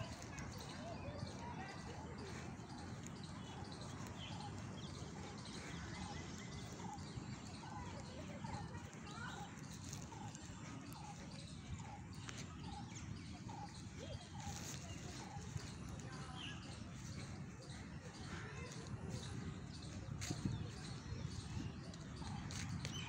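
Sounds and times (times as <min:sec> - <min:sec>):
birds chirping faintly: 0:00.0 - 0:23.0.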